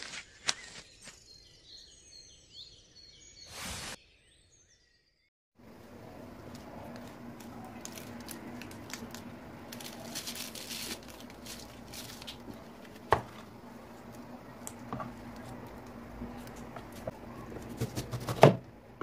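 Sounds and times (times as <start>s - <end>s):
steady low hum: 5.6s - 19.0s.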